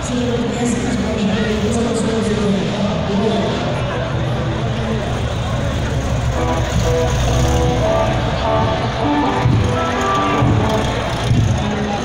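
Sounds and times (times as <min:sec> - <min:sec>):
crowd chatter: 0:00.0 - 0:12.0
engine running with low rumble: 0:00.0 - 0:12.0
music: 0:06.4 - 0:11.6.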